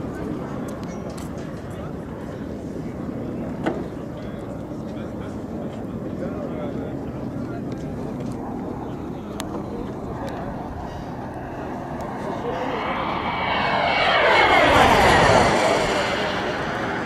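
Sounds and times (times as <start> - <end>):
model jet turbine whine: 9.0 - 17.0.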